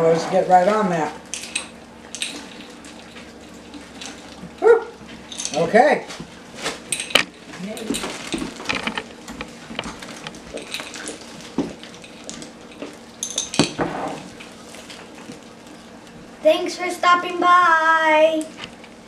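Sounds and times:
plastic bags crinkling: 0:06.5 - 0:16.2.

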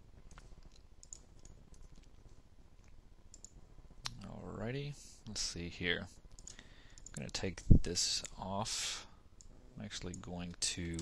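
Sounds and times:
computer mouse clicks: 0:00.3 - 0:02.4, 0:03.3 - 0:04.2, 0:06.3 - 0:08.4.

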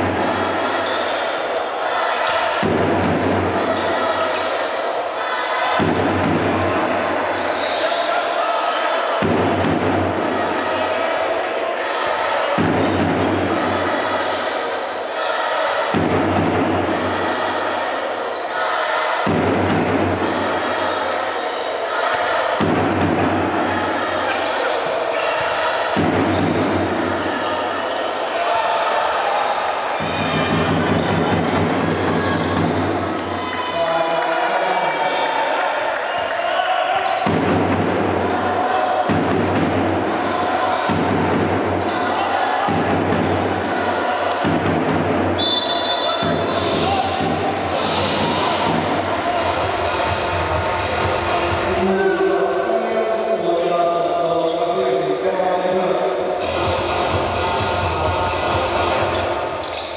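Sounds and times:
crowd voices: 0:00.0 - 0:59.9.

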